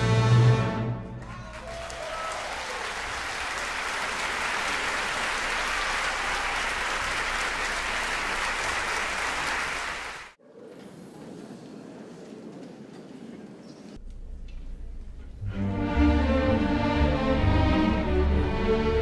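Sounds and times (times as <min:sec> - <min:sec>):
audience applauding: 0:01.2 - 0:10.4.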